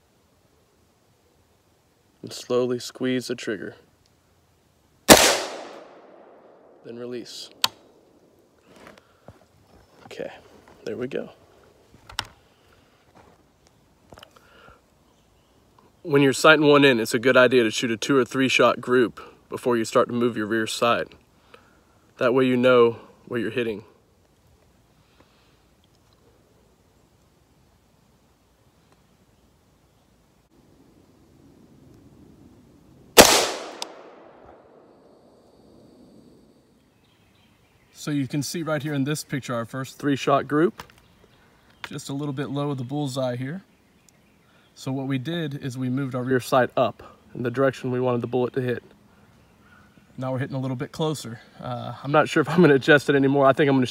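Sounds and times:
rifle click: 5.1s - 6.4s, 7.5s - 7.9s, 33.2s - 34.6s
faint clicks and rustles: 7.5s - 16.0s.

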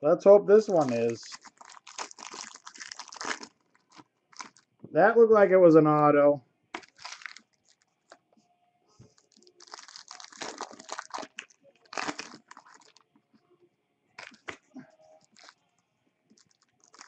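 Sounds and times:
foil wrapper crinkling: 0.7s - 4.7s, 6.8s - 8.2s, 9.2s - 13.1s, 14.2s - 14.6s, 15.2s - 15.6s, 16.3s - 17.0s.

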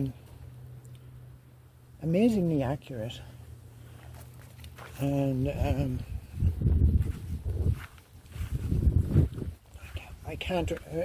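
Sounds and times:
footsteps on grass: 3.9s - 11.0s
wind buffeting microphone: 5.4s - 10.9s.

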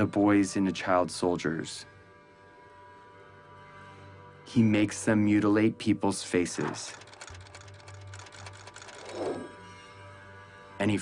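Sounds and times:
rapid mechanical clicking: 6.5s - 9.5s.

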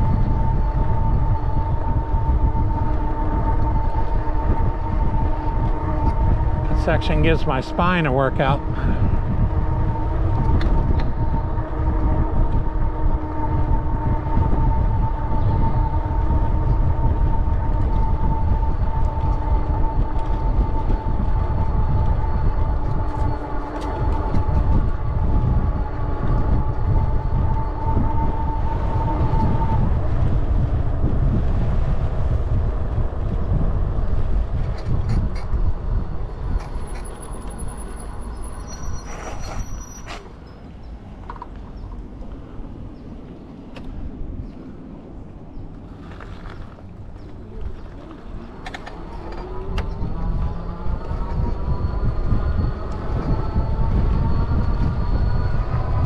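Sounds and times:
high whine: 0.0s - 45.5s, 46.8s - 56.0s
bicycle tyres rumbling on pavement: 0.0s - 56.0s
wind buffeting microphone: 0.0s - 56.0s.

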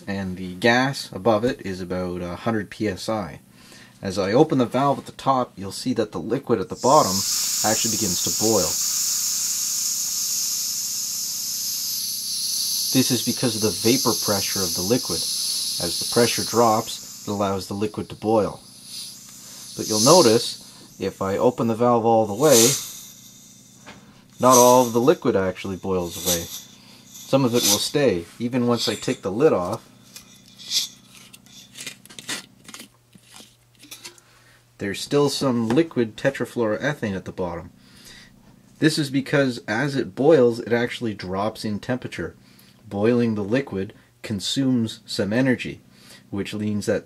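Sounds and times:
gas hissing from valve: 6.8s - 31.7s.

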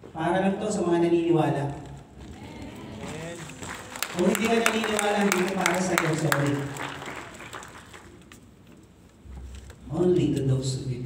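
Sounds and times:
echo of man preaching: 3.0s - 7.1s.

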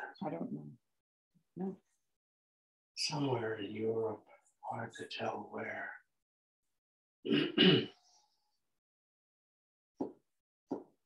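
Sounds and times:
person coughing: 7.3s - 8.0s.

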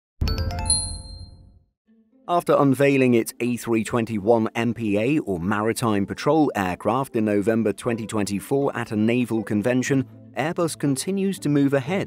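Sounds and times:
bright chime notes: 0.2s - 1.5s.

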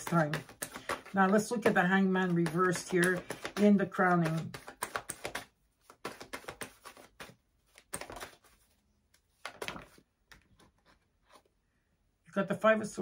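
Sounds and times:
cards flicking and slapping: 0.0s - 10.5s.

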